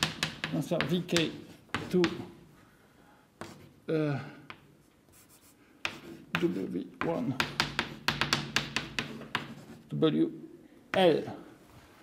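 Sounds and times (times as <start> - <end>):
chalk clicking on blackboard: 0.0 - 2.3, 3.4 - 3.6, 4.5 - 9.8
man speaking: 0.5 - 2.4, 6.3 - 7.5, 9.9 - 11.6.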